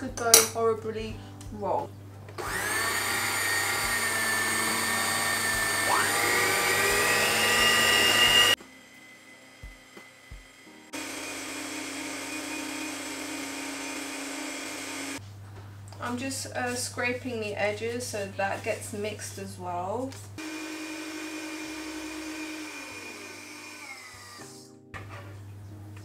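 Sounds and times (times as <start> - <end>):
stand mixer motor whine: 2.4 - 15.2, 20.4 - 24.4.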